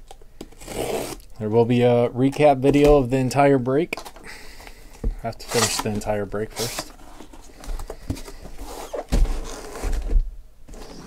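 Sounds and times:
knocks and dull thumps: 0:05.0 - 0:05.2
cardboard flaps rustling and scraping: 0:05.4 - 0:11.0.

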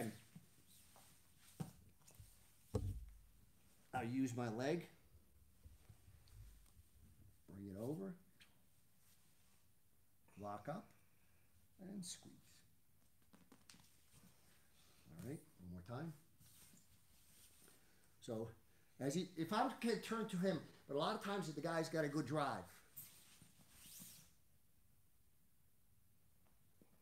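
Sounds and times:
faint rustles on a mat: 0:00.0 - 0:04.0, 0:05.5 - 0:09.8, 0:13.0 - 0:18.2, 0:22.7 - 0:24.4
low thud on foam mat: 0:02.7 - 0:03.2.

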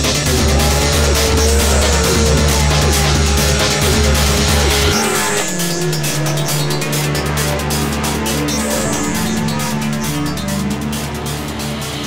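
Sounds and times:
background music: 0:00.0 - 0:12.0
off-road truck engines: 0:00.0 - 0:12.0.

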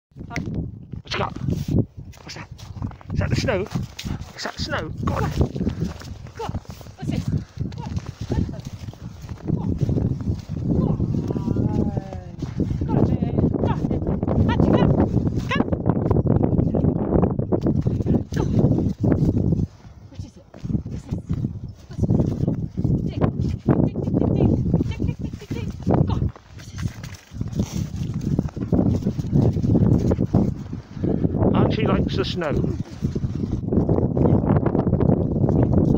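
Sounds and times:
footsteps crunching through snow: 0:01.5 - 0:13.2, 0:24.8 - 0:30.8.

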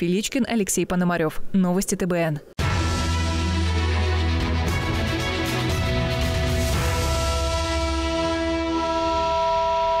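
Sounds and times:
tv theme music held chord: 0:02.6 - 0:10.0.

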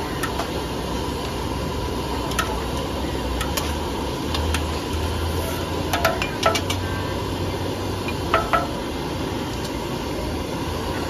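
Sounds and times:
noodles frying: 0:00.0 - 0:11.0
wok burner roaring: 0:00.0 - 0:11.0.

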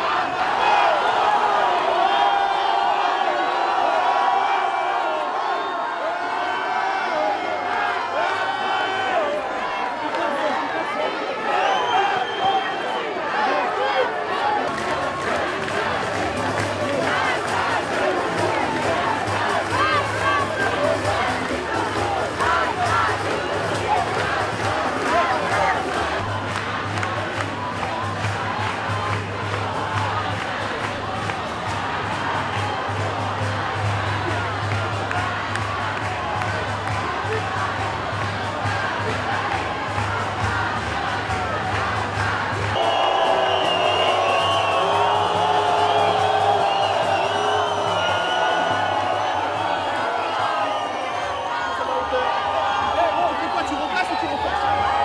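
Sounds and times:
crowd shouting and chanting: 0:00.0 - 0:55.0.

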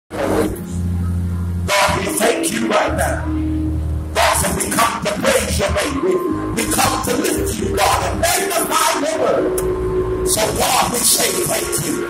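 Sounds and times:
organ chords: 0:00.1 - 0:12.0.

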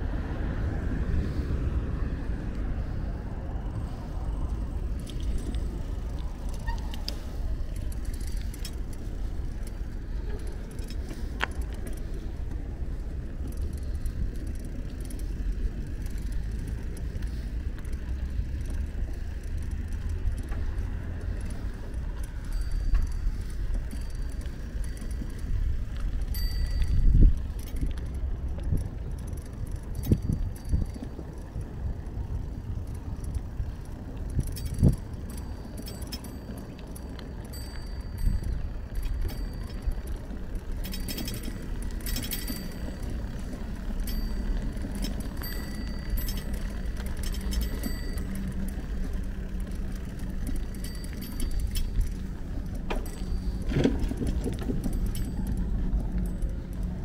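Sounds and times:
bicycle tyres rumbling on paving: 0:00.0 - 0:57.0
bike rattling and clicking: 0:00.0 - 0:57.0
bicycle bump: 0:04.9 - 0:57.0
wind on microphone: 0:24.6 - 0:35.5.

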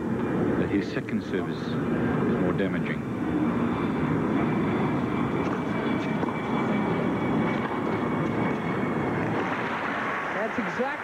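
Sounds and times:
crowd rumble: 0:00.0 - 0:11.0.

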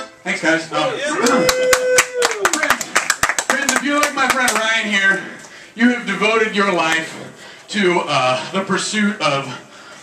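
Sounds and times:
audience clapping: 0:01.2 - 0:04.8.

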